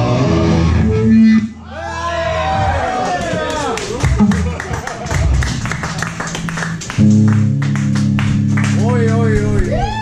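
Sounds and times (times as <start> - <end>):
rock band playing loosely: 4.0 - 10.0.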